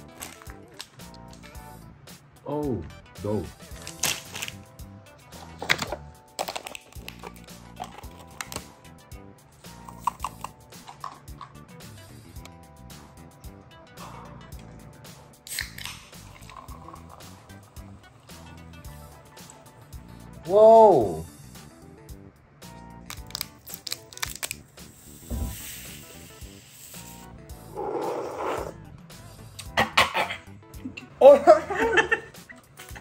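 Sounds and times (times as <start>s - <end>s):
background music: 0.0s - 33.0s
plastic packaging crinkling: 3.7s - 4.6s, 23.1s - 24.6s.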